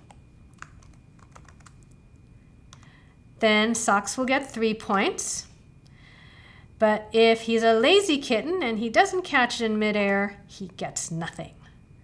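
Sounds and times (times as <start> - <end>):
typing on computer keyboard: 0.0 - 2.0.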